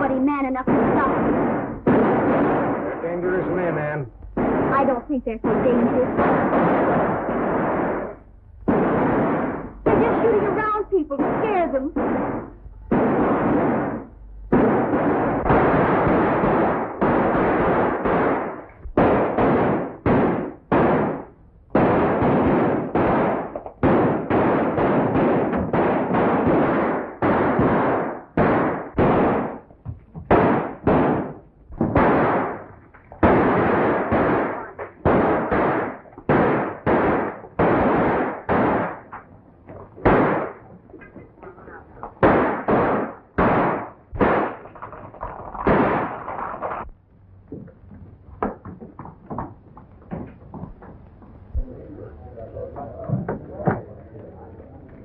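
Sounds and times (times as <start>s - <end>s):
gunshots: 0.0s - 29.7s, 30.3s - 47.0s.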